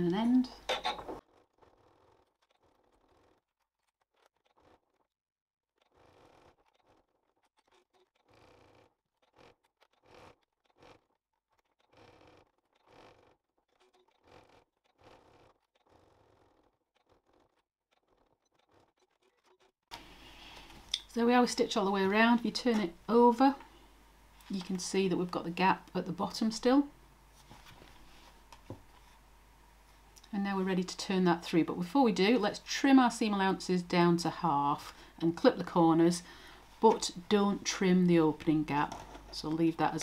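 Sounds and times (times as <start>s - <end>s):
faint scratchy rustles: 27.3s - 29.2s.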